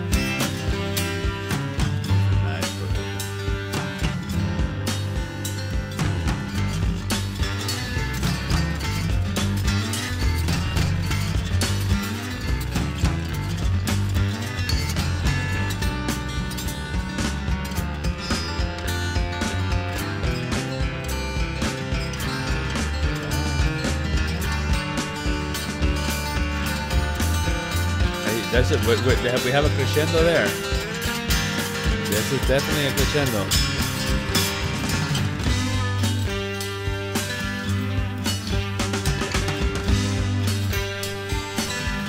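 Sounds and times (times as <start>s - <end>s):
drums steady beat: 0.0s - 42.0s
melodic bass line: 0.0s - 42.0s
picked electric guitar: 0.0s - 42.0s.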